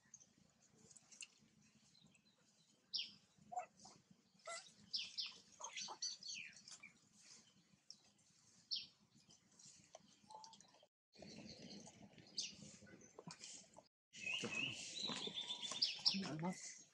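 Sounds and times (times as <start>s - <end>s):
faint bird chirps: 14.2s - 16.4s.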